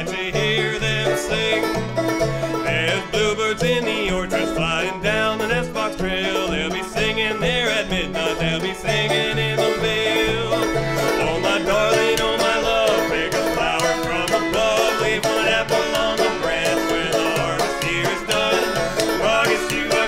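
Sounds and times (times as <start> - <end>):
banjo picking: 0.0 - 20.0
fiddle bowing: 0.0 - 20.0
plucked upright bass: 0.0 - 20.0.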